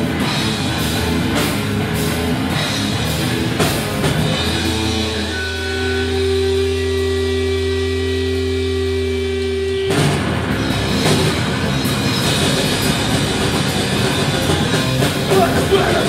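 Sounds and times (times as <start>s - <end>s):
distorted electric guitars droning: 0.0s - 16.0s
heavy rock band playing: 0.0s - 16.0s.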